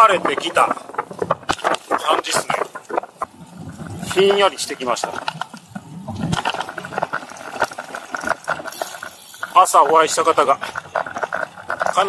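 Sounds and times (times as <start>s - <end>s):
bike tyre and wind noise: 0.0s - 12.0s
irregular clicks and rattles: 0.0s - 12.0s.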